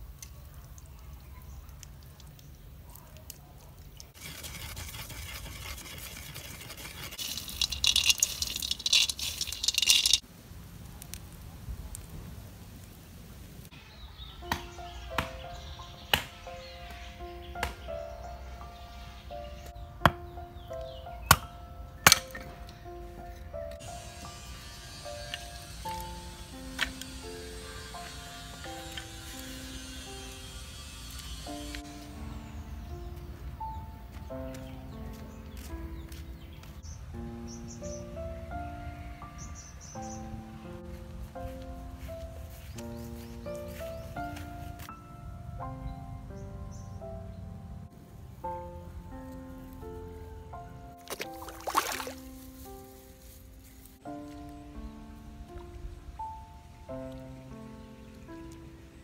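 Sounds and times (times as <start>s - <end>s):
knife scraping coconut shell: 4.1s - 10.2s
simple melody of held notes: 14.4s - 51.6s, 52.2s - 59.0s.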